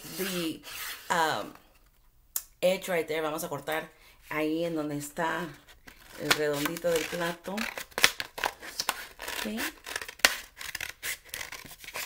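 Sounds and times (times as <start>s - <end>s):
scissors snipping paper: 6.2s - 12.0s.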